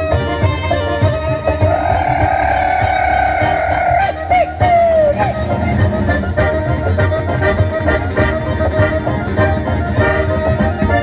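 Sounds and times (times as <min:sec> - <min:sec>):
folk dance music on accordion: 0:00.0 - 0:11.0.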